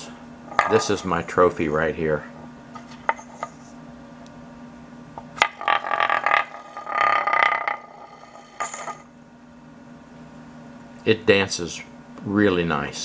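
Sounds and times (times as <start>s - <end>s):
top scraping rattle on wood: 5.4s - 9.0s.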